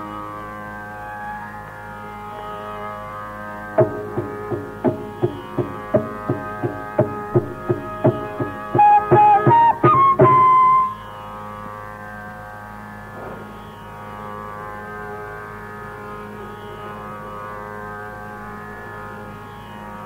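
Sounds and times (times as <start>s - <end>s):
tambura drone: 0.0s - 20.0s
bamboo flute melody: 3.7s - 11.3s
hand drum strokes: 3.8s - 10.9s.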